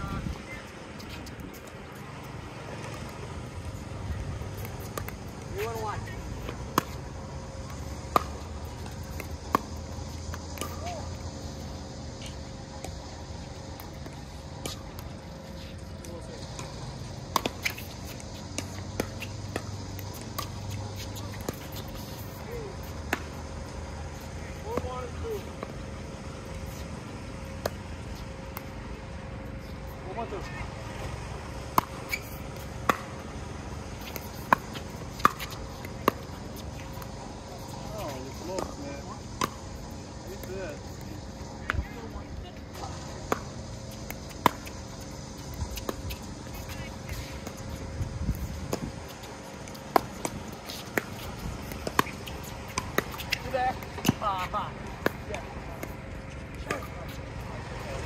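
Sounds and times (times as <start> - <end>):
steady low rumble: 39.2 - 57.6.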